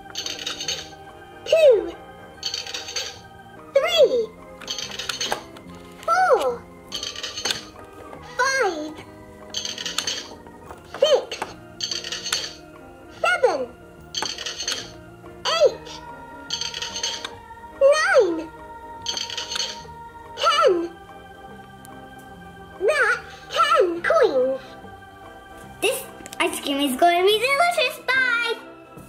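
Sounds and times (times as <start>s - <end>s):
toy looping music: 0.0s - 21.0s
jingly toy coin sound: 0.1s - 1.0s, 2.4s - 3.2s, 4.6s - 5.5s, 6.9s - 7.7s, 9.5s - 10.4s, 11.2s - 12.6s, 14.1s - 15.0s, 15.9s - 17.4s, 19.0s - 19.8s.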